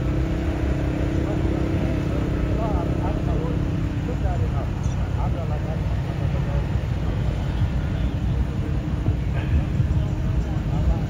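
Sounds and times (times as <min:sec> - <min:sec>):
distant indistinct voices talking: 0:00.0 - 0:11.0
low rumble: 0:05.2 - 0:11.0.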